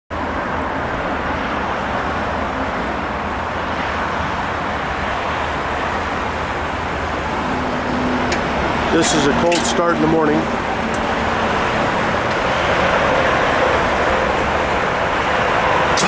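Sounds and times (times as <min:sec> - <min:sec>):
diesel engine running: 0:00.2 - 0:16.0.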